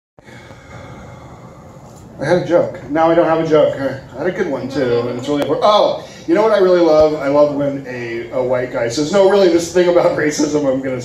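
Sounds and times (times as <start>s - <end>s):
room noise of small venue: 0.2s - 11.0s.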